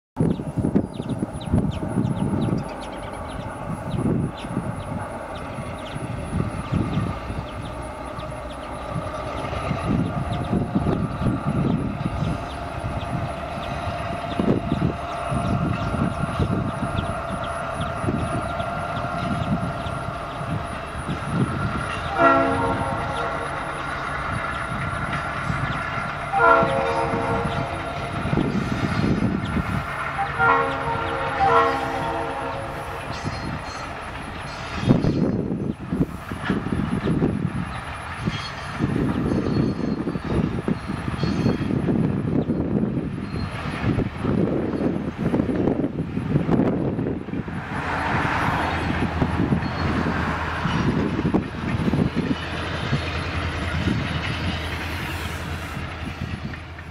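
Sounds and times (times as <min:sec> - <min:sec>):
train wheels rumbling over rails: 0:00.2 - 0:56.9
train horn blast: 0:21.8 - 0:24.3, 0:26.2 - 0:33.5.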